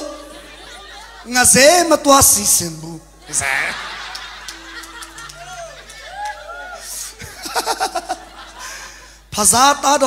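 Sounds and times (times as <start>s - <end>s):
man speaking loudly: 3.3s - 3.9s
man chuckling into microphone: 3.3s - 4.1s.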